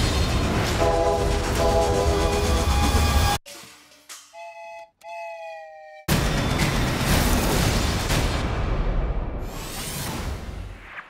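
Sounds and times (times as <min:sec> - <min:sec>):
toy train whistle toots: 0:04.1 - 0:06.1.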